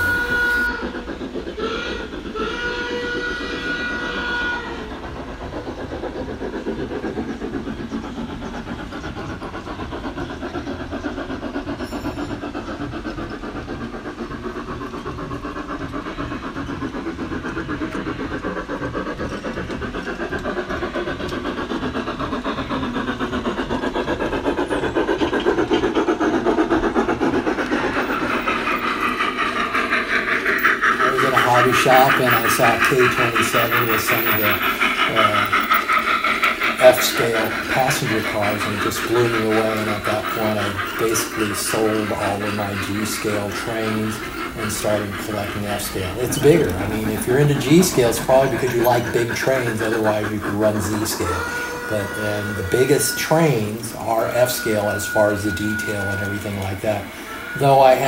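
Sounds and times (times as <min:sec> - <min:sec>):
model steam locomotive whistle: 0:00.0 - 0:01.0, 0:01.6 - 0:05.0, 0:31.0 - 0:35.8, 0:36.6 - 0:58.0
locomotive chuffing: 0:00.0 - 0:58.0
wheel clatter: 0:07.2 - 0:58.0.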